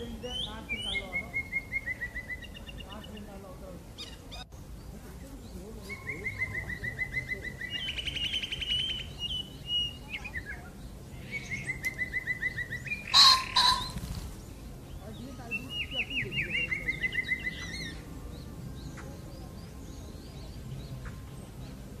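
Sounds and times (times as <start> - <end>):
blackbird singing: 0.0 - 22.0.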